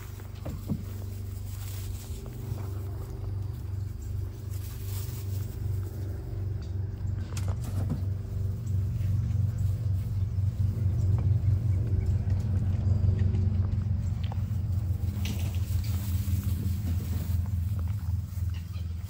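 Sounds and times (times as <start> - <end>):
low engine hum: 0.0 - 19.0.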